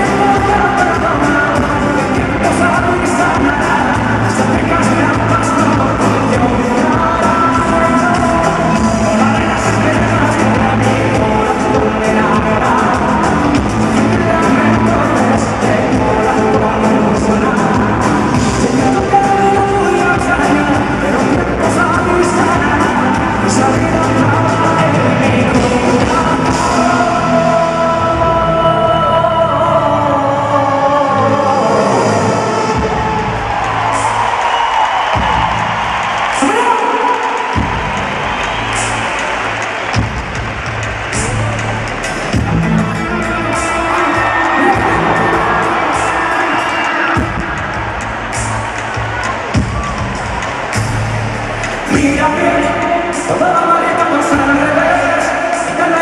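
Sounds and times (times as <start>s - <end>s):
crowd cheering: 0.0s - 29.3s, 30.4s - 56.0s
man singing lead vocal: 0.0s - 40.2s, 41.0s - 50.8s, 51.4s - 56.0s
live pop band: 0.0s - 56.0s.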